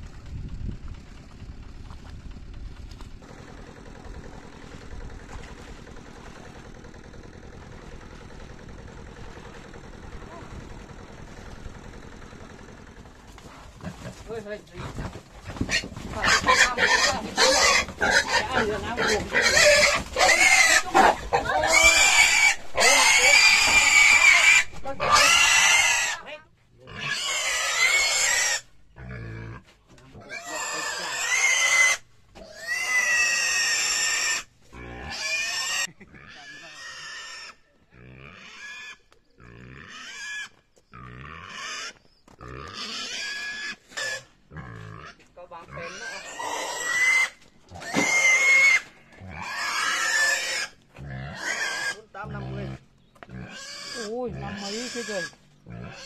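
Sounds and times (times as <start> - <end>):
pig squealing: 15.6 - 26.3, 26.9 - 29.6, 30.2 - 56.0.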